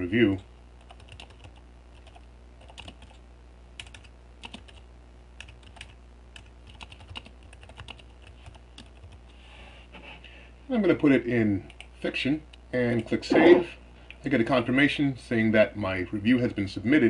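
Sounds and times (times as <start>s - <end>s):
typing on computer keyboard: 0.8s - 3.2s, 3.8s - 4.8s, 5.4s - 9.2s.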